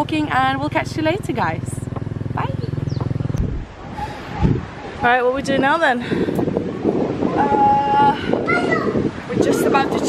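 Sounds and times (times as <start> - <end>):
open-air ambience: 0.0 - 10.0
small engine running: 0.6 - 3.6
low thump: 2.8 - 3.8.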